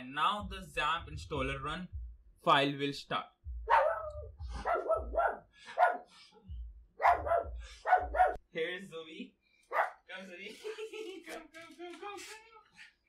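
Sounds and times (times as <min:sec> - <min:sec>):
dog barking: 0:03.7 - 0:06.1, 0:07.0 - 0:08.4, 0:09.7 - 0:10.0.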